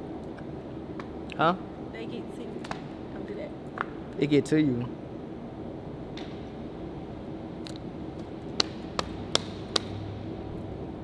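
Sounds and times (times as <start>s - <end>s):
parking garage hum: 0.0s - 11.0s.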